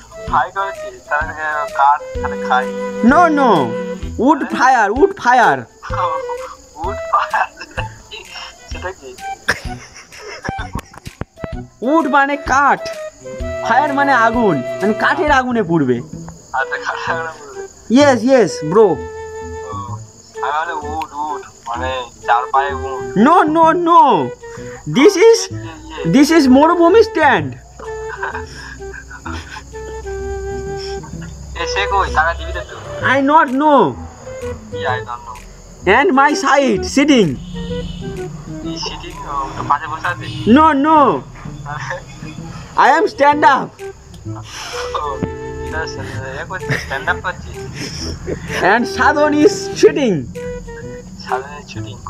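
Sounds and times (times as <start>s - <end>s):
crickets chirring: 0.0s - 52.0s
man talking on speakerphone: 0.3s - 9.3s, 11.8s - 19.0s, 19.6s - 27.6s, 31.6s - 37.5s, 38.7s - 50.3s, 51.2s - 52.0s.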